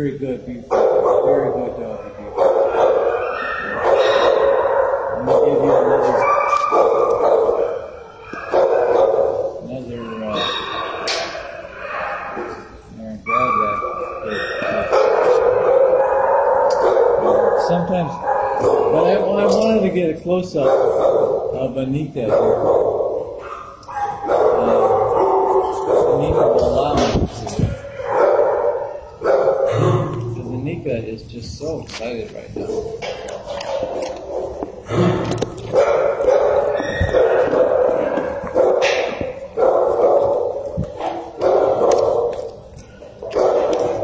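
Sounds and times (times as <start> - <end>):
dog vocalising: 1.3 - 19.8, 22.4 - 30.2, 32.6 - 44.0.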